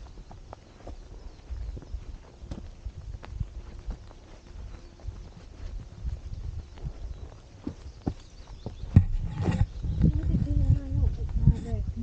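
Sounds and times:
footsteps on dirt path: 0.0s - 12.0s
steady low rumble: 1.0s - 12.0s.

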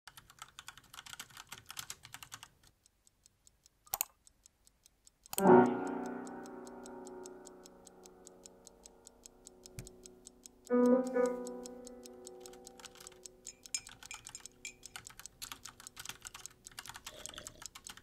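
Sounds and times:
typing on laptop keyboard: 0.1s - 2.8s, 5.2s - 18.0s
clock-like ticking: 0.1s - 18.0s.

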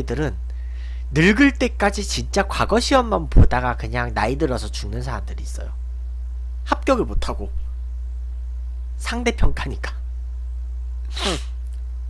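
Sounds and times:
steady low hum: 0.0s - 12.0s
man's breathy vocal burst: 11.1s - 11.6s.

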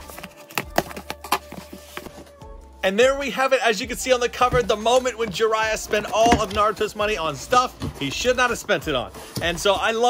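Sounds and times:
cardboard box being opened: 0.0s - 2.4s, 4.5s - 8.3s.

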